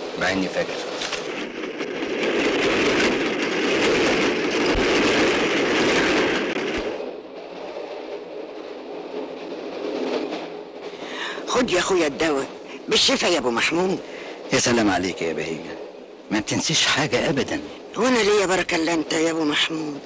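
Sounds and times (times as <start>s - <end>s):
train rumble and rattle: 0.0s - 20.0s.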